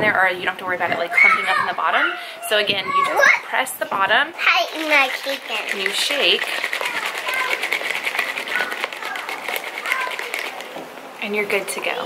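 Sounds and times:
bottle being shaken rattling: 0:04.4 - 0:10.9.

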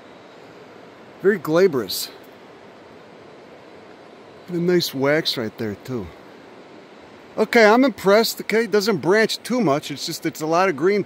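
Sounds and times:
outdoor background hiss: 0:00.0 - 0:11.0.

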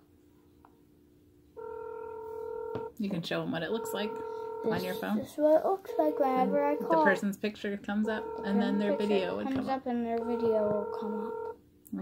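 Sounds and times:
smartwatch electronic calling tone: 0:01.6 - 0:02.9, 0:03.5 - 0:05.2, 0:05.8 - 0:07.3, 0:07.9 - 0:09.5, 0:10.2 - 0:11.6.

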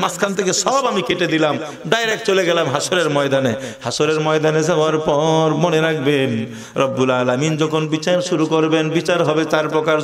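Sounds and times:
man chanting sermon: 0:00.0 - 0:10.0.

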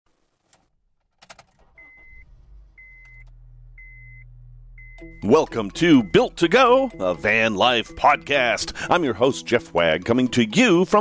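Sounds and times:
vehicle engine idling: 0:01.6 - 0:07.7
warning chime beeping: 0:01.8 - 0:08.0.

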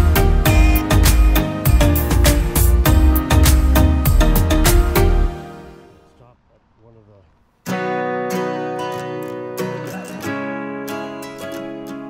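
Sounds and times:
strummed acoustic guitar: 0:07.6 - 0:12.0.

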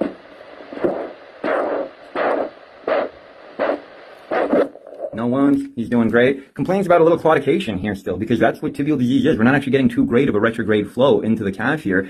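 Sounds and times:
doppler ultrasound pulse beats: 0:00.0 - 0:05.2
steady hiss: 0:00.0 - 0:12.0.

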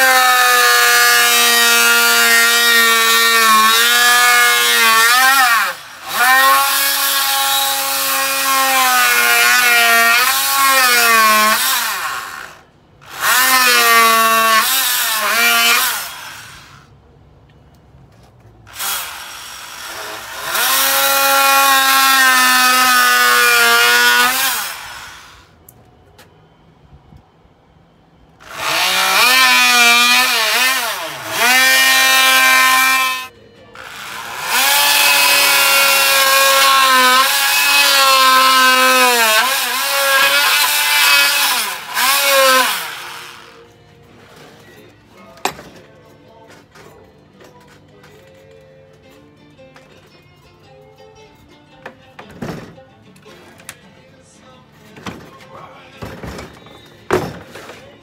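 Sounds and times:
electric grinder on wood: 0:00.0 - 0:16.8, 0:18.7 - 0:25.6, 0:28.4 - 0:43.7.

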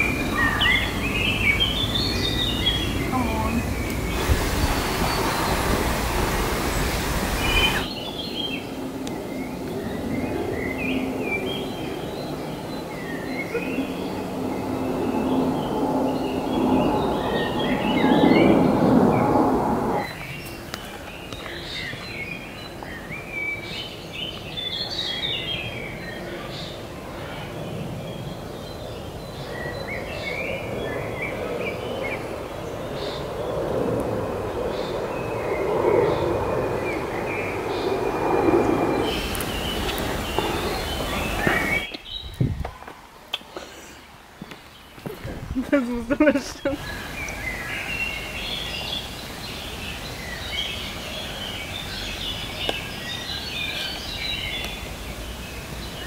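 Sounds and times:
small birds chirping: 0:00.0 - 0:56.0
loud rushing noise: 0:03.6 - 0:08.0, 0:13.9 - 0:20.2
low rumble: 0:13.8 - 0:20.1.

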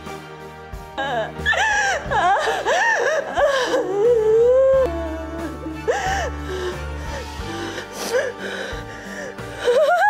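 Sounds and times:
background music: 0:00.0 - 0:10.0
woman wailing and sobbing: 0:01.0 - 0:10.0.

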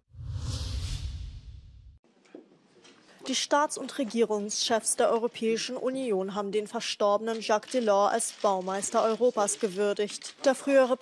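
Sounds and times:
whoosh transition effect: 0:00.0 - 0:02.0.

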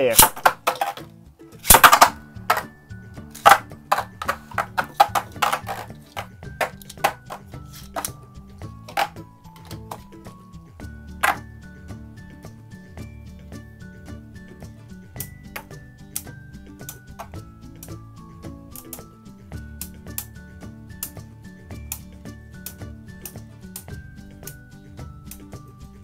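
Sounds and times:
spinning tops clacking: 0:00.0 - 0:08.2, 0:08.8 - 0:10.2, 0:11.2 - 0:11.5
background music with steady beat: 0:00.0 - 0:26.0.

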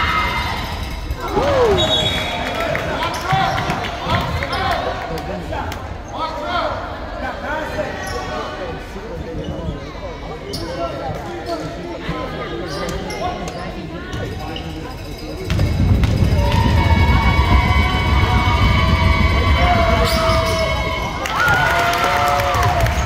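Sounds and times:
chatter of voices echoing: 0:00.0 - 0:23.0
basketball bouncing on hardwood floor: 0:15.5 - 0:20.3.

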